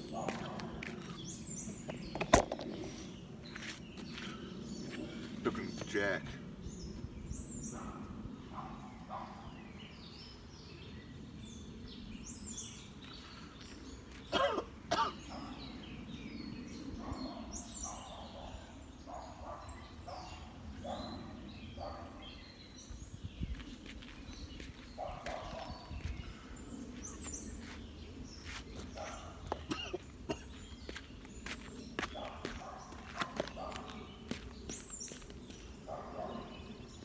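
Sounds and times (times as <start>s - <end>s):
birds chirping: 0.0s - 37.0s
man coughing: 14.3s - 15.2s, 29.6s - 30.6s.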